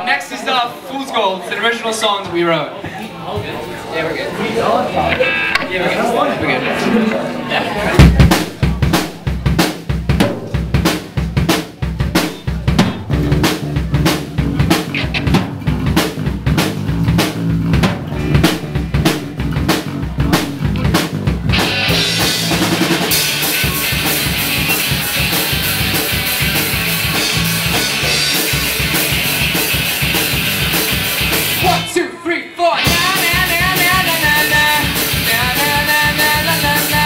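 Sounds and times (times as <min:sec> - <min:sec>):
live rock band playing: 0:04.9 - 0:32.0, 0:32.8 - 0:37.0
bass drum and snare hits: 0:08.0 - 0:24.8
electric guitars: 0:12.0 - 0:31.9, 0:32.8 - 0:37.0.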